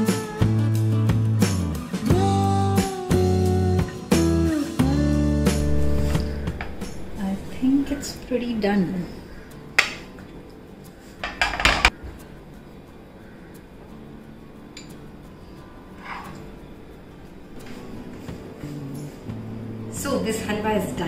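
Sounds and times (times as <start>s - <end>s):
spatula scraping frying pan: 16.0s - 16.4s.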